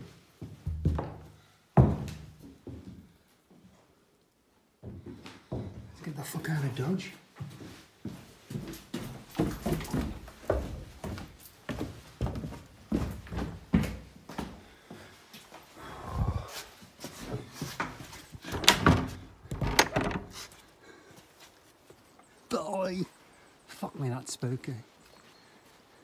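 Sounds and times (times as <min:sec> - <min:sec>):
footsteps on wooden boards: 0:00.0 - 0:03.6, 0:04.8 - 0:06.0, 0:07.4 - 0:15.6, 0:16.4 - 0:22.1
wooden door pushed open: 0:17.8 - 0:20.6.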